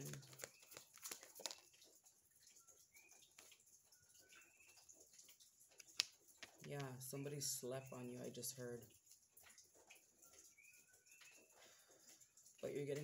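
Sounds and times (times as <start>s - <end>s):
tarot deck being shuffled: 0.0s - 1.8s.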